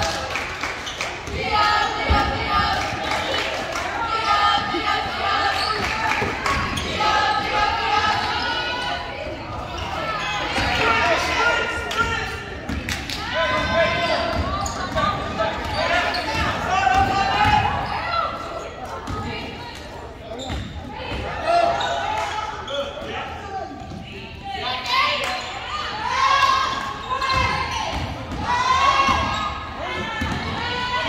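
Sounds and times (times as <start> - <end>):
voices calling and shouting: 0.0 - 31.0.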